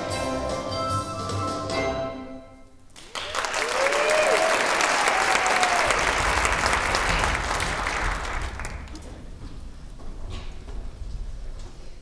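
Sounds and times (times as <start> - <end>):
audience clapping: 2.9 - 9.1
people cheering: 3.0 - 8.9.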